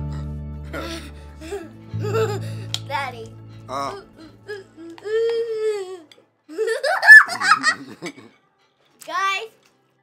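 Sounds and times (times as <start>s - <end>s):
child laughing: 2.0s - 2.5s, 4.5s - 8.2s.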